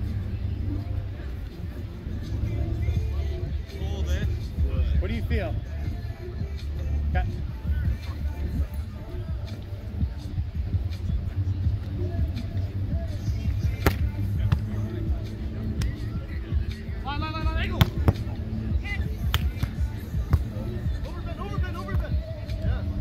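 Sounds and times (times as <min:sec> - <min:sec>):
background music: 0:00.0 - 0:23.0
steady low rumble: 0:00.0 - 0:23.0
hands slapping volleyball: 0:13.8 - 0:14.7, 0:17.8 - 0:18.2, 0:19.3 - 0:20.5.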